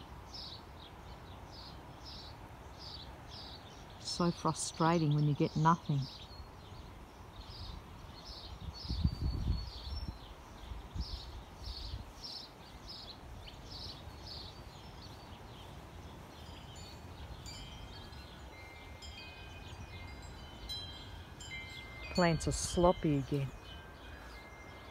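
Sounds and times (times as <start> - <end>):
wind rumbling on microphone: 5.4 - 24.9
wind chimes ringing: 16.2 - 24.9.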